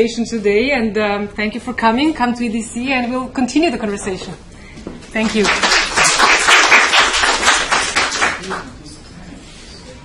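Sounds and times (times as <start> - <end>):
audience clapping: 5.2 - 8.8.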